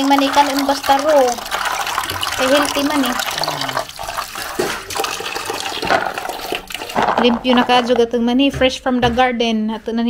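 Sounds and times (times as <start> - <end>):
water splashing in metal basin: 0.0 - 7.9.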